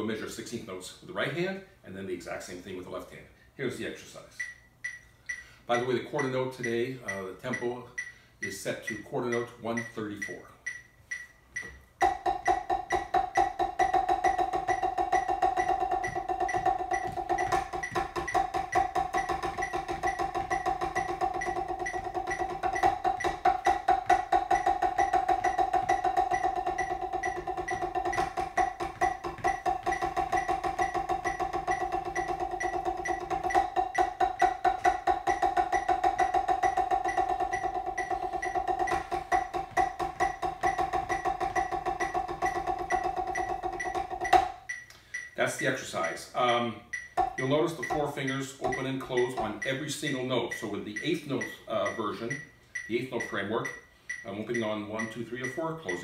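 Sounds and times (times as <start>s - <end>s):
drumsticks on practice pad: 4.4s - 56.0s
metronome clicking: 4.4s - 56.0s.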